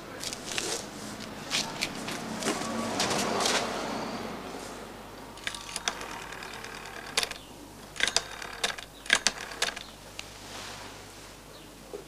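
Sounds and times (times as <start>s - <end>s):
rotary telephone dial clicking: 5.4s - 9.9s.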